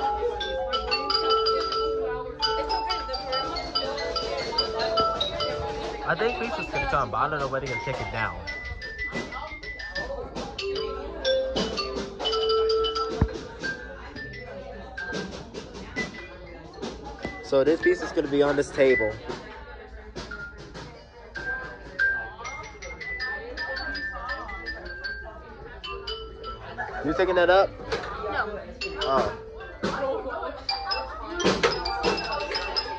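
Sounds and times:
people talking: 0:00.0 - 0:32.9
xylophone-like mallet percussion: 0:00.0 - 0:32.9.

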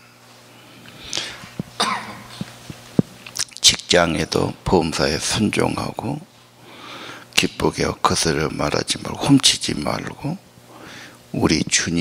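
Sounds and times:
person coughing: 0:01.8 - 0:02.4.

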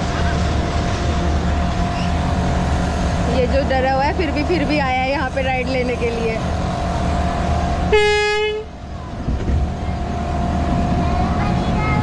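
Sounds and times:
machinery low hum: 0:00.0 - 0:12.0.

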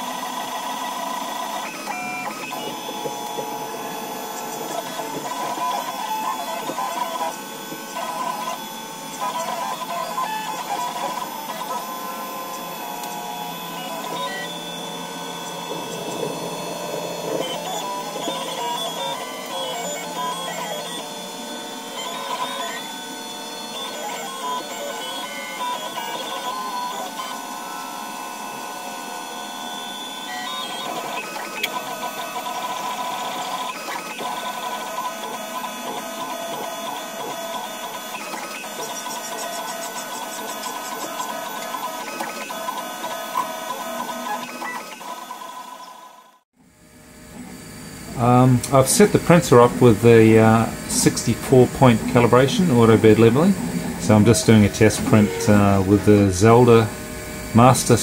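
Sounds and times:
stepper motors whining: 0:00.0 - 0:46.4, 0:47.0 - 0:58.0.

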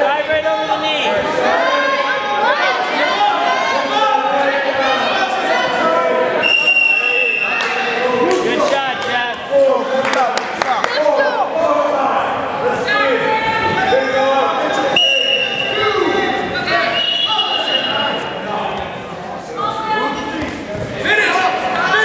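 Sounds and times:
people calling out in a gym: 0:00.0 - 0:09.8, 0:10.7 - 0:18.8, 0:19.5 - 0:22.0
high whistle blast: 0:06.4 - 0:07.6, 0:16.9 - 0:18.2.

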